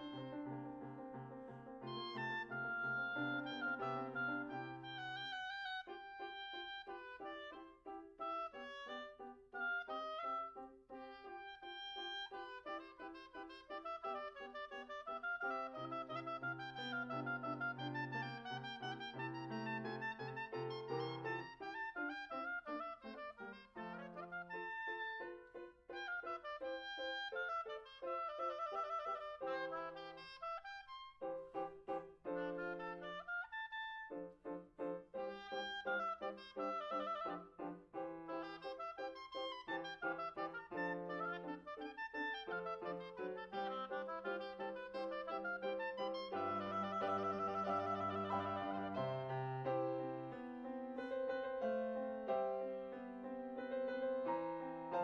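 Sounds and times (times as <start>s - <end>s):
piano accompaniment: 0.0s - 55.0s
woodwind playing fast passages: 0.0s - 55.0s.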